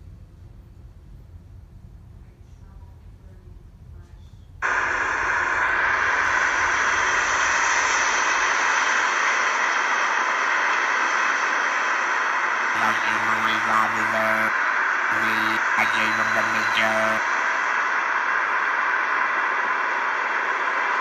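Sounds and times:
hiss-like rushing noise: 4.6 - 12.7.

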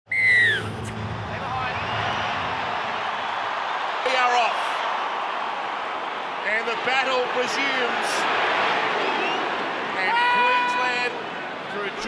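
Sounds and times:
high falling whistle: 0.1 - 1.1
stadium crowd din: 0.2 - 12.0.

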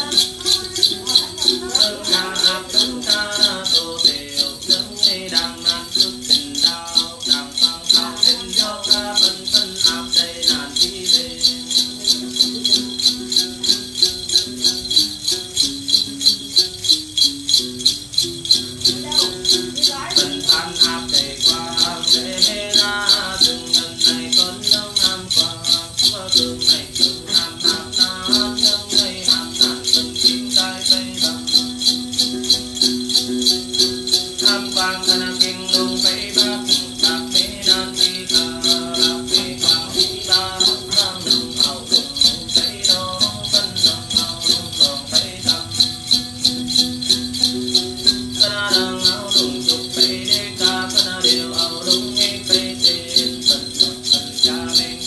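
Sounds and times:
jingle bells shaken: 0.0 - 55.0
man singing: 0.0 - 55.0
plucked lute: 0.0 - 55.0.

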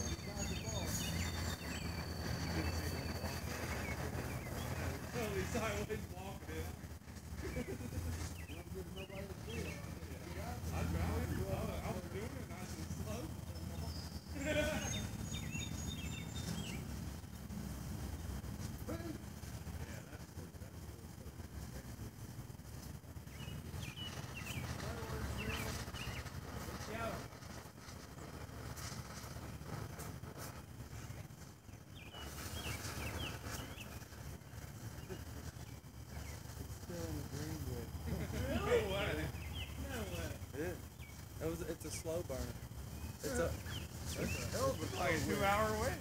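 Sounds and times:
faint indistinct voices: 0.0 - 46.0
low outdoor rumble: 0.0 - 46.0.

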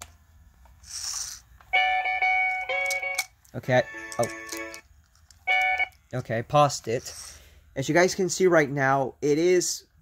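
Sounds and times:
short hiss: 0.8 - 1.5.

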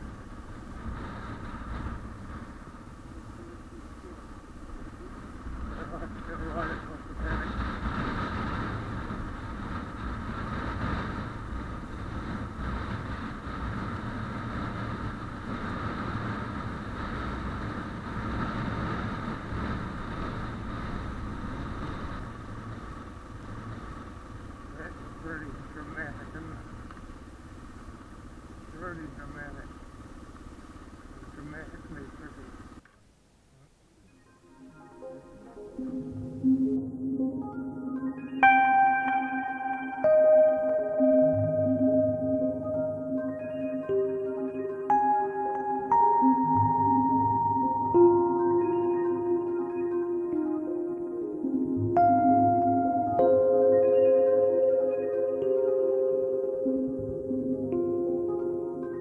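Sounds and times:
motorcycle engine running: 0.0 - 32.8
wind and road noise: 0.0 - 59.0.

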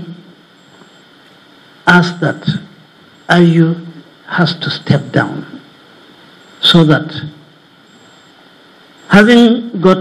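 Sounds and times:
faint background hiss: 0.0 - 10.0
man speaking: 1.9 - 5.6, 9.1 - 10.0.

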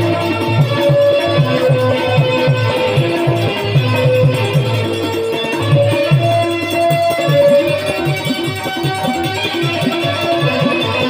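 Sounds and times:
drums steady beat: 0.0 - 11.0
sustained melody line: 0.0 - 11.0.

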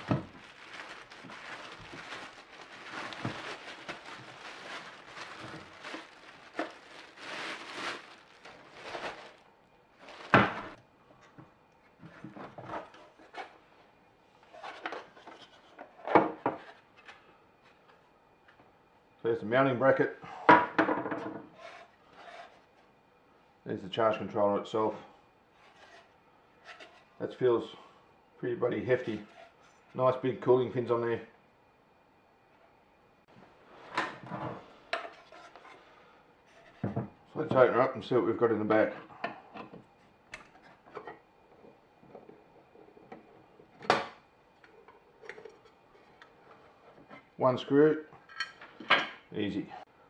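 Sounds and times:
faint handling noise: 0.0 - 13.6.

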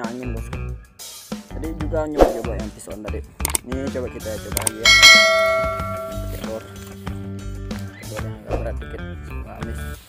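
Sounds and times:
bright bell chime: 4.8 - 6.6.

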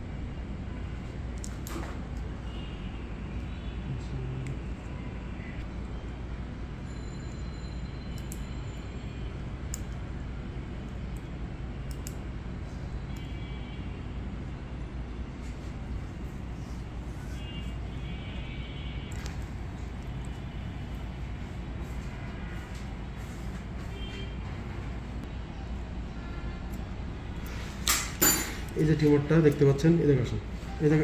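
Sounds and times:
low rumbling background noise: 0.0 - 31.0
faint high whine: 2.4 - 22.7
metal instruments clinking: 27.8 - 29.6.

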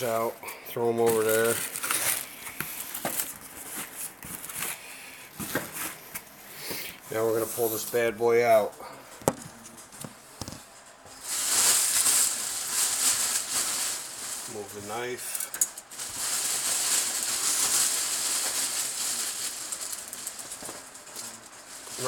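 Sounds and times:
plastic and cardboard rustling: 0.0 - 22.0.

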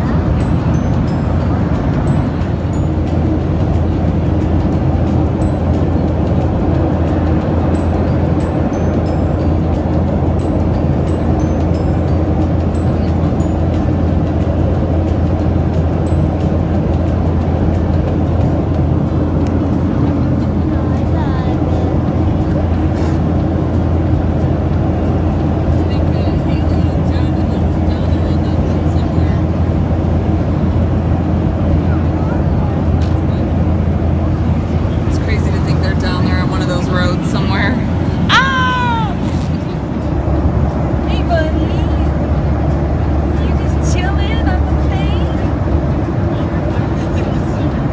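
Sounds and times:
jet engine cabin roar: 0.0 - 47.9
low even hum: 0.0 - 47.9.

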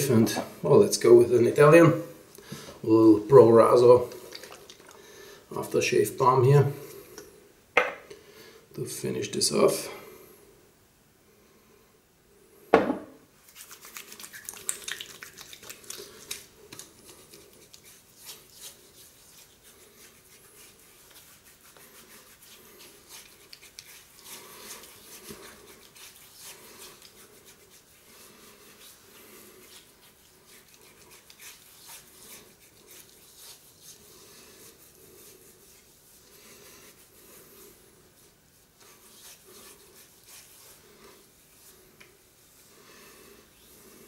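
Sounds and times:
sharp knock: 12.7 - 13.2
hands rubbing skin: 13.4 - 42.8.

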